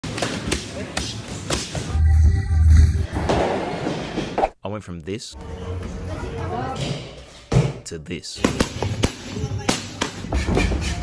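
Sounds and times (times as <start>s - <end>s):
boxing gloves punching mitts: 0.0s - 2.0s, 8.4s - 11.0s.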